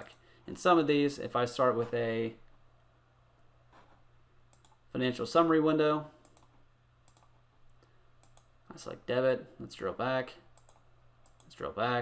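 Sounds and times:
low steady hum: 0:00.0 - 0:12.0
computer mouse clicks: 0:04.5 - 0:04.8, 0:06.2 - 0:08.5, 0:10.6 - 0:11.6.

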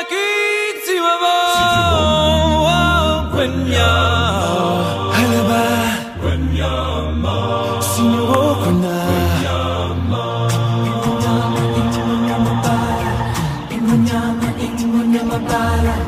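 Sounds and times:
song with sung vocals: 0:00.0 - 0:16.0.

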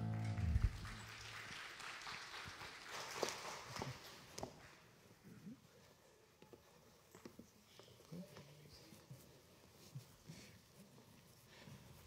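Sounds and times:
band holding a chord: 0:00.0 - 0:01.2.

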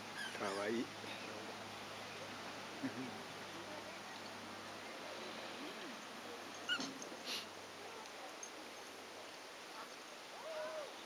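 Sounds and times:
breathy hiss: 0:04.9 - 0:07.7
dog yipping: 0:06.6 - 0:07.0.

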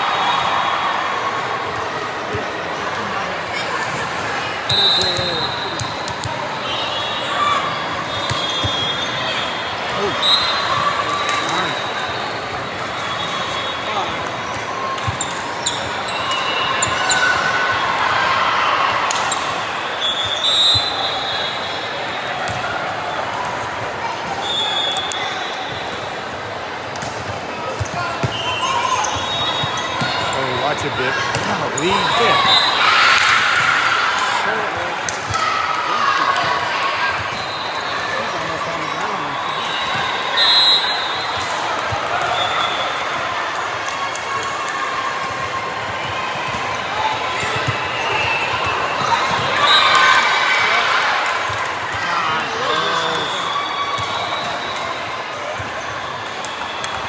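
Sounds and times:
voices of players and spectators: 0:00.0 - 0:57.0
sneakers squeaking: 0:04.7 - 0:17.8, 0:27.6 - 0:33.7, 0:46.1 - 0:50.8.

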